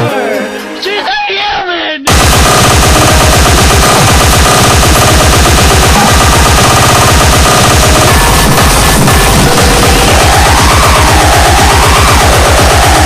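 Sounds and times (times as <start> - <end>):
distorted electronic music: 2.1 - 13.0
rapid kick drum: 2.1 - 13.0.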